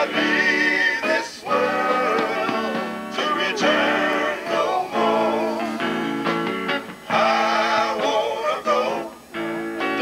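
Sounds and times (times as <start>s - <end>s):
male vocal group singing: 0.0s - 6.1s, 7.0s - 9.2s
electric guitar: 0.0s - 10.0s.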